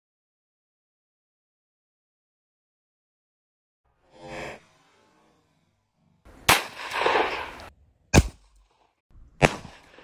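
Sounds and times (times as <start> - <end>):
revolver shots: 6.4 - 8.6.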